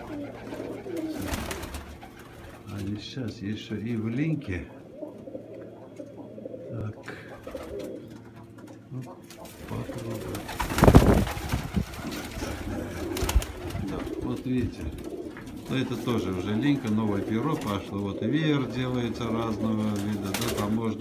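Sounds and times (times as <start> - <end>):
pigeons cooing: 0.0 - 3.0, 3.7 - 21.0.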